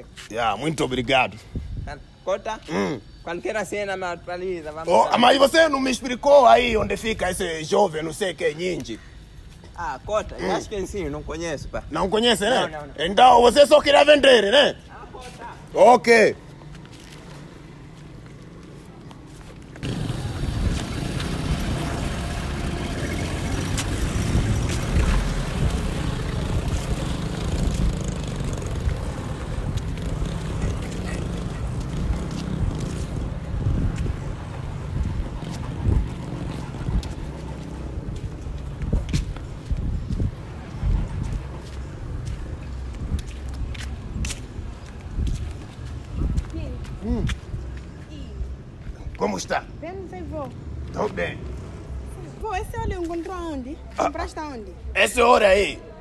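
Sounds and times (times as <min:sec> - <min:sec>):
wind on microphone: 0:23.5 - 0:47.8.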